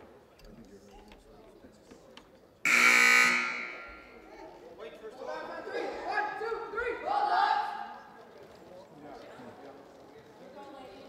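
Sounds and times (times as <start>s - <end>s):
scoreboard horn buzzing: 2.7s - 4.2s.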